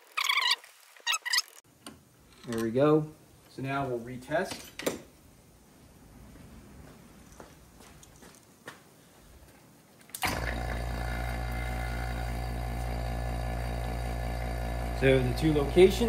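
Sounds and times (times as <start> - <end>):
vacuum pump humming: 10.2 - 16.0.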